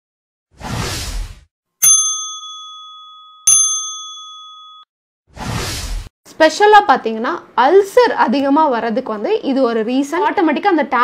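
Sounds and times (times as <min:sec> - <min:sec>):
bright bell-like dings: 0:01.8 - 0:04.9
whoosh: 0:05.3 - 0:06.1.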